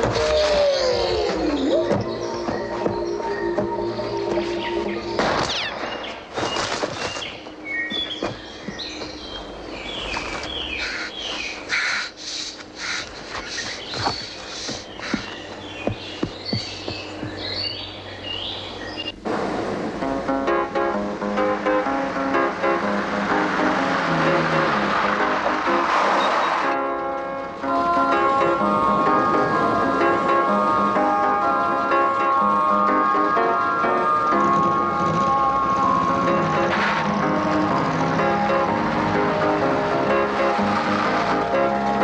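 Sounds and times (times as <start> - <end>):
birds chirping: 0.0 - 19.2
film score music: 0.0 - 42.0
forest ambience: 0.0 - 42.0.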